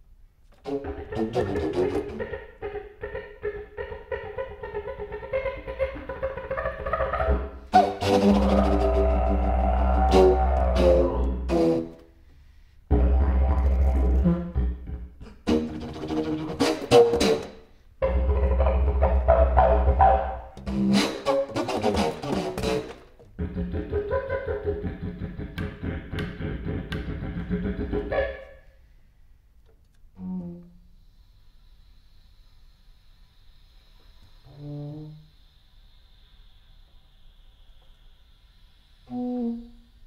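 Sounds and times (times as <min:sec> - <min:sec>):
contrabass flute: 0:00.6 - 0:02.3, 0:06.8 - 0:12.1, 0:12.9 - 0:24.7, 0:30.2 - 0:40.0
didgeridoo drone: 0:00.7 - 0:11.9, 0:12.9 - 0:16.9, 0:18.0 - 0:20.9.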